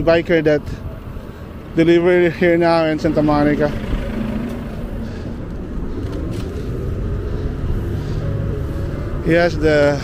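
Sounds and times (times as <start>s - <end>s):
street traffic rumble: 0.0s - 10.0s
wind: 0.0s - 10.0s.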